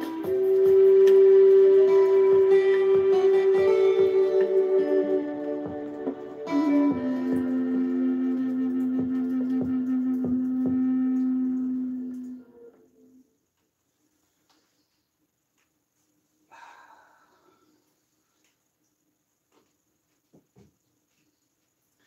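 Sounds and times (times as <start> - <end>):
soft plucked guitar: 0.0 - 11.4
low bamboo flute note: 0.0 - 13.2.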